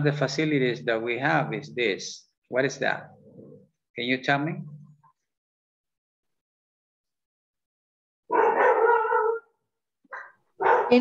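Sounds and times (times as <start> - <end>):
dog barking: 8.3 - 11.0.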